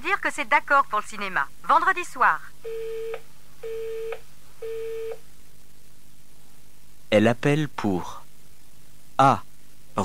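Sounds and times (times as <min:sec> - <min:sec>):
telephone busy tone beeps: 0:02.6 - 0:05.2.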